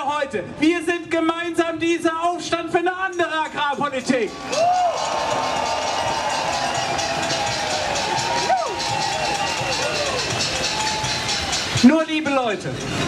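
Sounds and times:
crowd cheering and clapping: 0:03.8 - 0:13.0.

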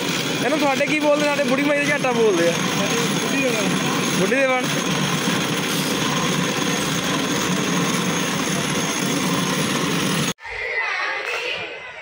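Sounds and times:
cotton candy machine whirring: 0:00.0 - 0:10.4.

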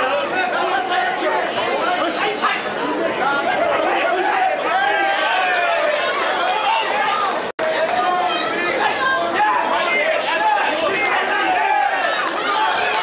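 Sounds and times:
crowd shouting and chattering: 0:00.0 - 0:13.0.

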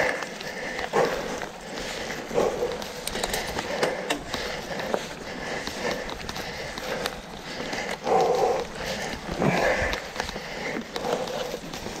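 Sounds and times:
bike clicking and rattling: 0:00.0 - 0:12.0
person breathing hard: 0:00.0 - 0:12.0.

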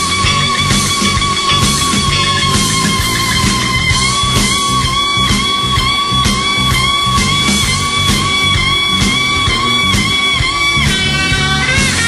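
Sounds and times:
drums: 0:00.0 - 0:12.0
electric guitar bending note: 0:00.0 - 0:12.0.

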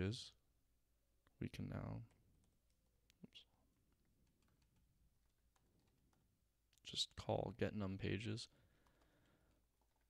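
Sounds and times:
computer keyboard keystrokes: 0:03.9 - 0:06.4, 0:08.6 - 0:10.0.

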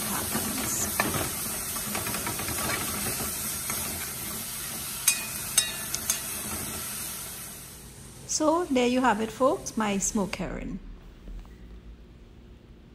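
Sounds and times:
fish sizzling in hot oil: 0:00.0 - 0:07.9
metal spoon stirring: 0:05.0 - 0:06.3
spoon clinking against pot: 0:05.0 - 0:06.3.

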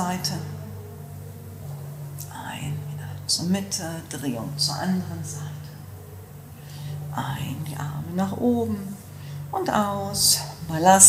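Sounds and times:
breathy whisper: 0:00.0 - 0:11.0
low steady background tone: 0:00.0 - 0:11.0.

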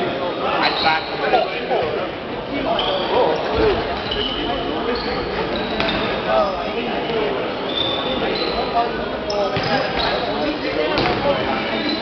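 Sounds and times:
shoes squeaking on court: 0:02.7 - 0:06.3, 0:07.7 - 0:12.0.

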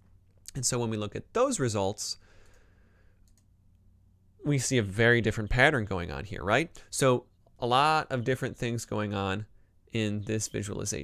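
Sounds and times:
faint computer mouse clicks: 0:03.2 - 0:03.8.

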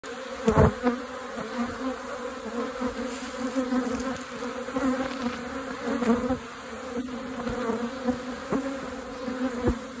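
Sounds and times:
bee colony buzzing: 0:00.0 - 0:10.0
bees zipping past: 0:00.1 - 0:10.0.

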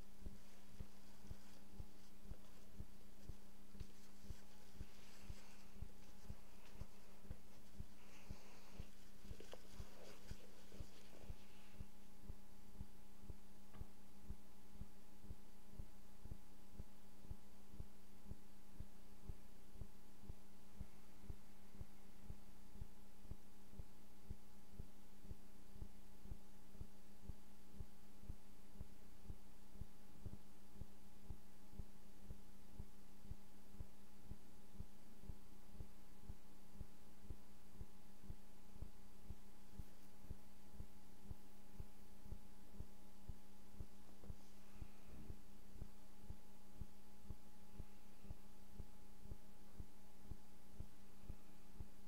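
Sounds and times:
low electrical hum: 0:00.0 - 0:52.0
soft low thuds: 0:00.0 - 0:52.0.

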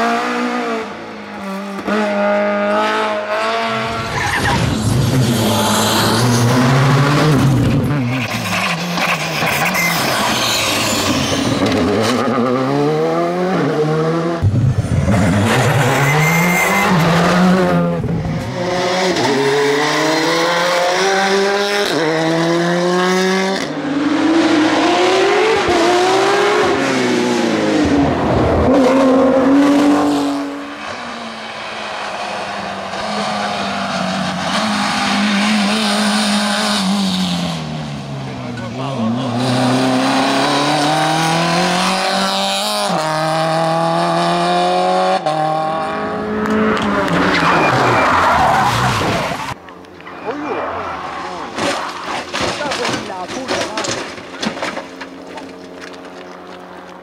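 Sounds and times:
rally car engines revving: 0:00.0 - 0:57.0
tyre squeal: 0:04.1 - 0:06.5, 0:07.8 - 0:12.3, 0:15.4 - 0:17.4, 0:47.2 - 0:52.3.

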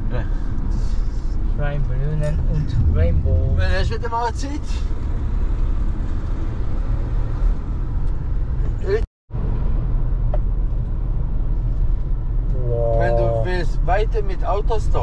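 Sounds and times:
car cabin road and engine rumble: 0:00.0 - 0:15.0.

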